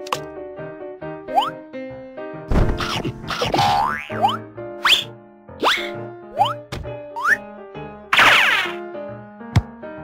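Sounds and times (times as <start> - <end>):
children's background music: 0.0 - 10.0.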